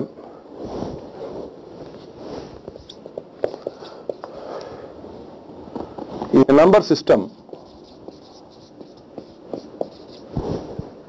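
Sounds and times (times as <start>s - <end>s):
marker writing on whiteboard: 2.7s - 4.4s, 7.3s - 10.3s.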